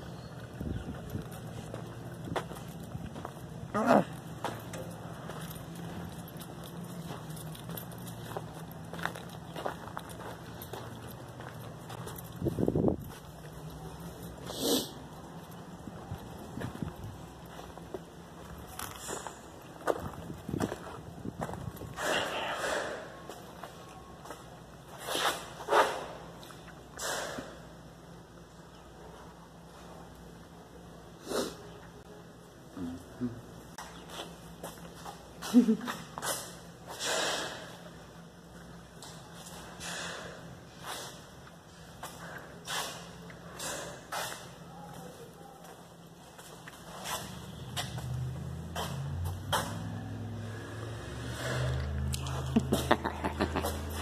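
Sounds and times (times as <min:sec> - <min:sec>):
footsteps: 0:00.3 - 0:26.6, 0:39.0 - 0:50.2.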